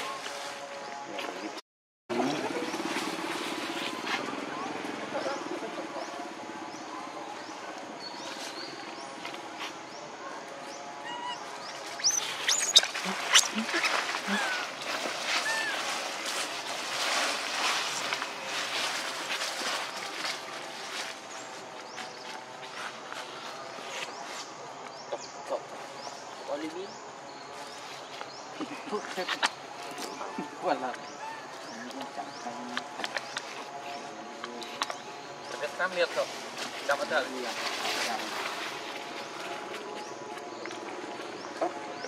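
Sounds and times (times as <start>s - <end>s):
dry leaves rustling: 0.0s - 1.4s, 2.1s - 6.8s, 8.1s - 24.8s, 27.5s - 42.0s.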